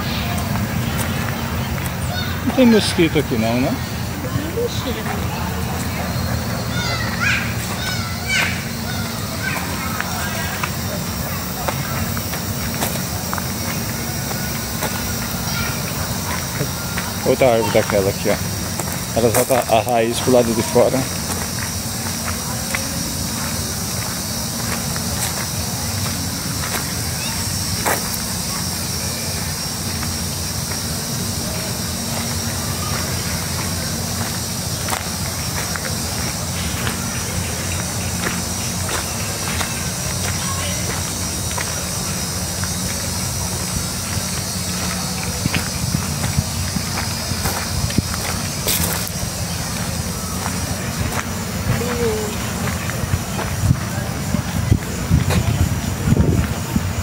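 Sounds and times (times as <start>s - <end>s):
footsteps crunching on dry leaves: 0.0s - 56.9s
background hum: 0.0s - 57.0s.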